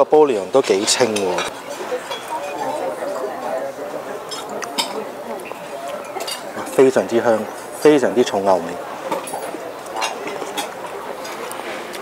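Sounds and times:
dining room chatter: 0:00.0 - 0:12.0.

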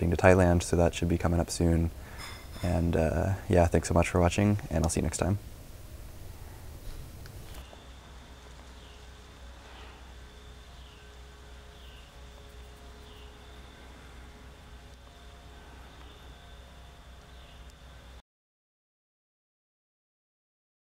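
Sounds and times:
faint high hum: 0:00.0 - 0:18.2.

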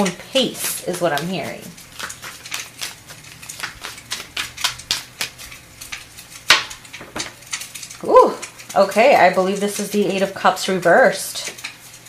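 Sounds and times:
cards being shuffled: 0:00.6 - 0:07.0.

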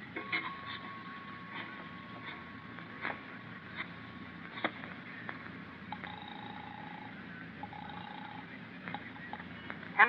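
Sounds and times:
telephone ringing tone: 0:05.9 - 0:09.1.

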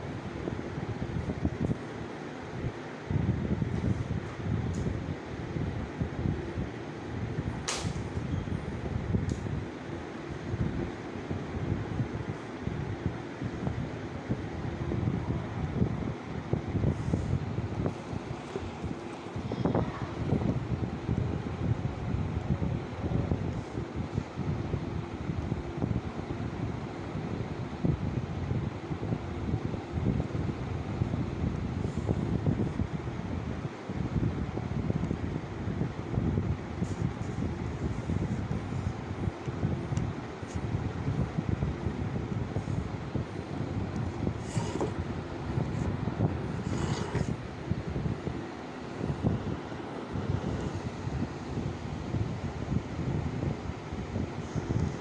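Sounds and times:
wind rumble on microphone: 0:00.0 - 0:55.0.

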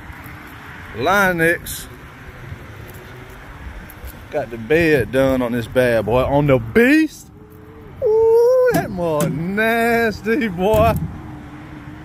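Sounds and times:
low rumble of vehicle noise: 0:00.0 - 0:12.0.

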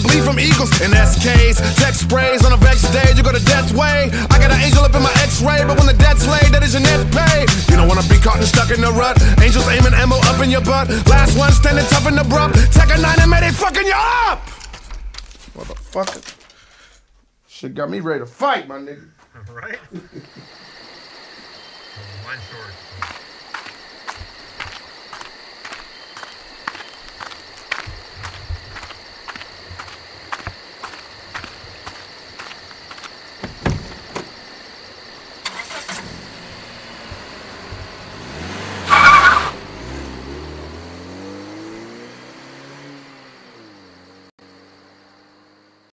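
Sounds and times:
drift trike rolling past: 0:35.4 - 0:43.0.

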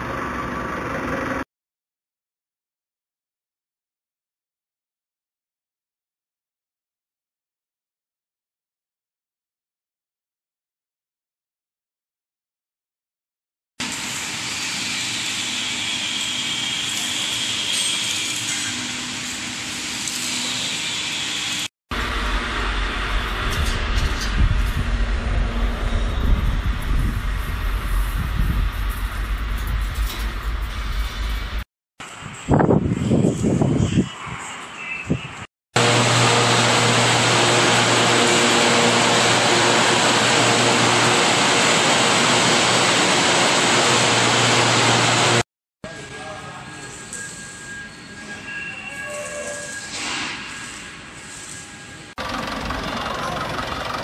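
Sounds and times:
fryer and conveyor humming: 0:13.8 - 0:34.0, 0:35.8 - 0:54.0
heavy low rumble: 0:21.9 - 0:31.6.

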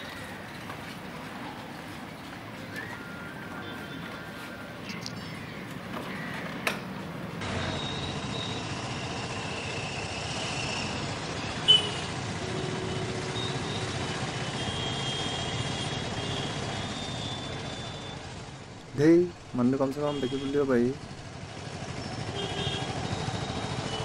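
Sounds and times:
traffic hum: 0:00.0 - 0:24.0.

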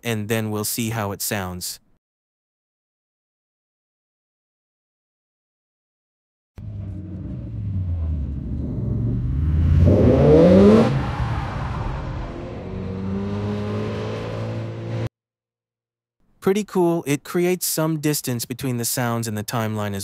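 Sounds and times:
car engine revving: 0:06.6 - 0:15.1.

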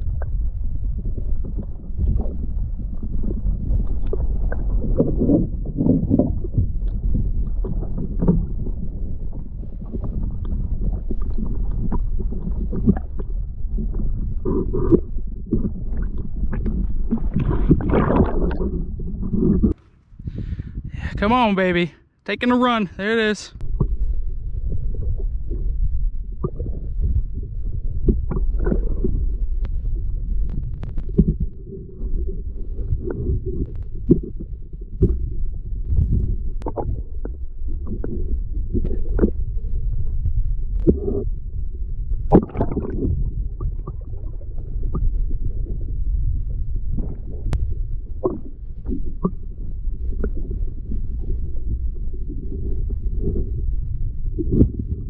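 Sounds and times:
deep rumble of water underwater: 0:00.0 - 0:22.2, 0:23.5 - 0:55.0.

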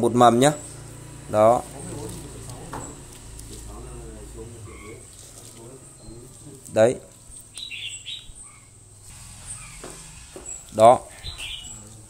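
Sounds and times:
bird chirps: 0:04.4 - 0:12.0.

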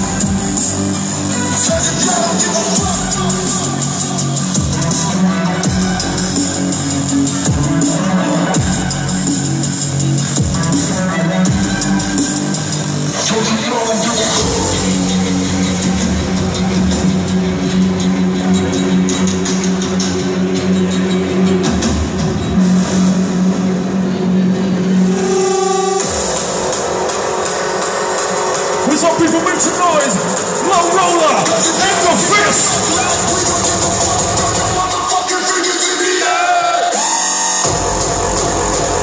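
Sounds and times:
industrial hardcore electronic music: 0:00.0 - 0:39.0.

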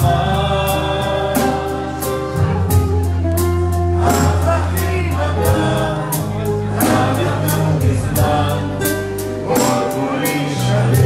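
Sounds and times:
people singing: 0:00.0 - 0:03.0, 0:03.9 - 0:11.0
bass notes: 0:00.0 - 0:11.0
drum kit with cymbal strokes: 0:00.0 - 0:11.0
keyboard: 0:00.0 - 0:11.0.

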